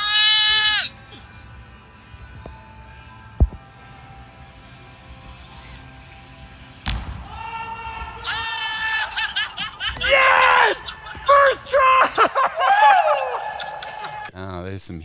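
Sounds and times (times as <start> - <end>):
indoor hall hum: 0.0 - 14.3
long high held shout: 7.2 - 14.3
people whooping and shouting: 7.2 - 14.3.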